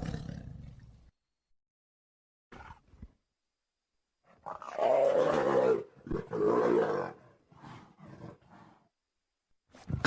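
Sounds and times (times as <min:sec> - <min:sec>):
big cat roaring: 0:00.0 - 0:00.8, 0:04.5 - 0:08.8.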